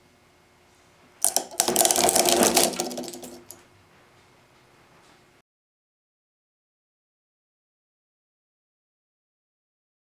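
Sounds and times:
plastic gears cracking and clattering: 1.2 - 3.6.

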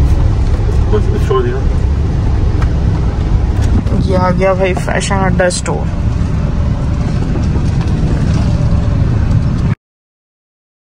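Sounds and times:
car engine and road rumble: 0.0 - 9.8.

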